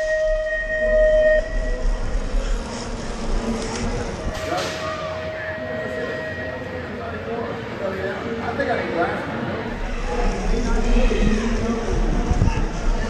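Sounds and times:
crowd and voices: 0:00.0 - 0:13.0.

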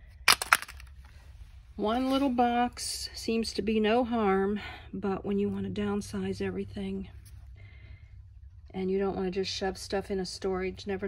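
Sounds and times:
small hard objects clicking: 0:00.3 - 0:00.9
woman speaking: 0:01.8 - 0:07.1, 0:08.7 - 0:11.0.

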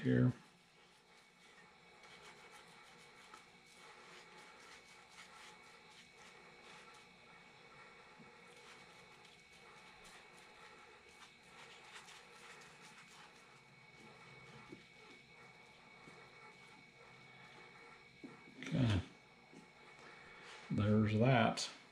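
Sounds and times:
foam brush ticks and rubs: 0:00.0 - 0:18.7.

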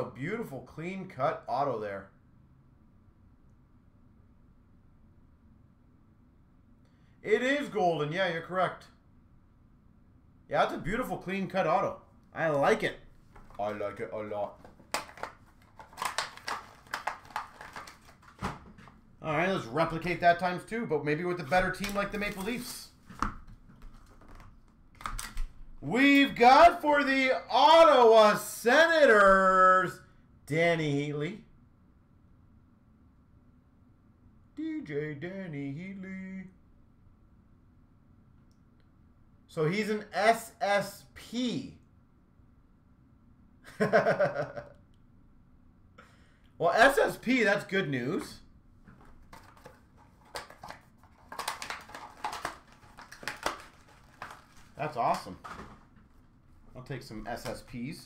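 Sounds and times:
cards and packaging clicks and rustles: 0:12.6 - 0:19.0, 0:21.4 - 0:26.4, 0:48.9 - 0:56.3, 0:57.0 - 0:57.8
cardboard boxes clicking and rustling: 0:49.1 - 0:55.8.

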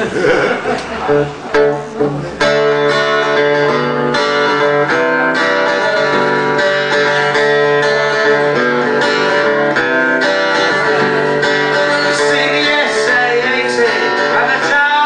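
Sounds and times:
electric guitar strumming chords: 0:00.2 - 0:15.0.

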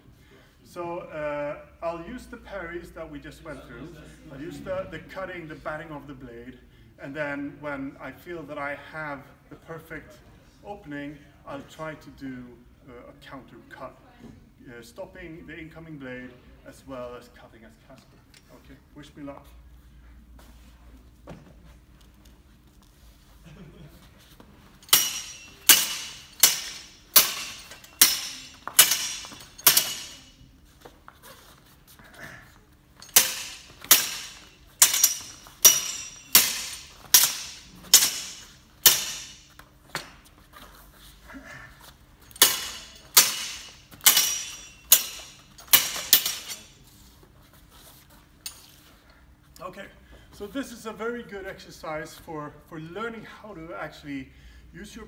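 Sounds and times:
swords clashing blade on blade: 0:24.8 - 0:30.4, 0:33.0 - 0:40.1, 0:42.3 - 0:46.8.

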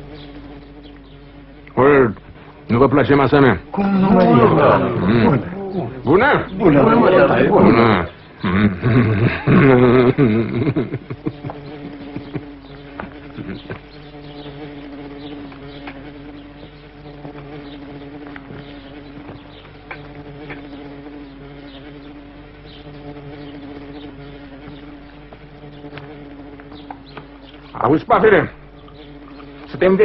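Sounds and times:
flies buzzing: 0:00.0 - 0:30.0.

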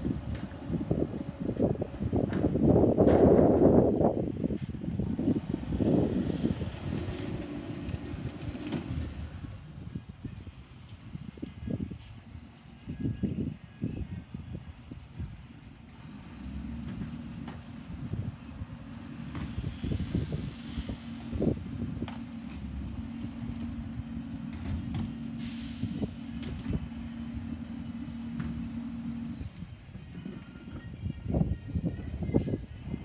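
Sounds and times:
distant garbage truck running: 0:00.0 - 0:31.0
wind buffeting microphone: 0:00.0 - 0:33.0.

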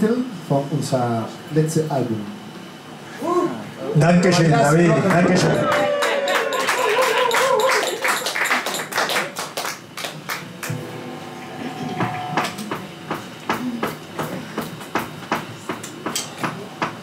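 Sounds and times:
held instrument note: 0:10.5 - 0:13.4.

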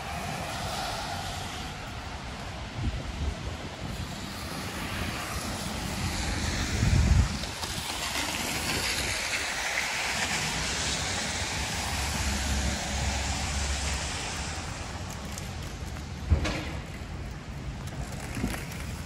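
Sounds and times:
tyre hiss on wet road: 0:00.0 - 0:16.9
wind buffeting microphone: 0:00.0 - 0:19.0.

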